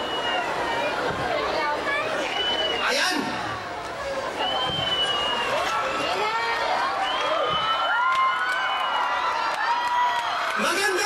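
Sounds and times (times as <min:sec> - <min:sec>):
concert crowd cheering: 0:00.0 - 0:11.0.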